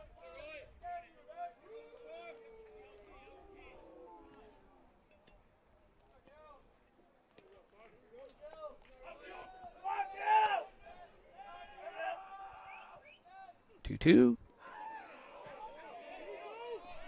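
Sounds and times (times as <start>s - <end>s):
voices talking in background: 0.0s - 17.0s.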